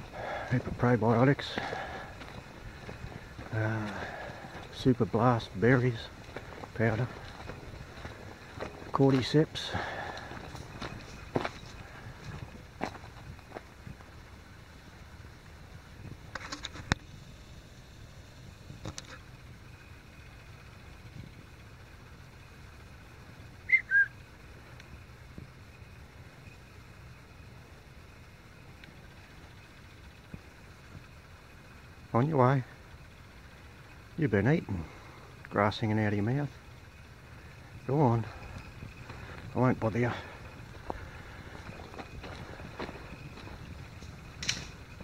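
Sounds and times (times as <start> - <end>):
footsteps on gravel: 0.0 - 14.1, 38.3 - 44.2
faint low hum: 0.0 - 45.0.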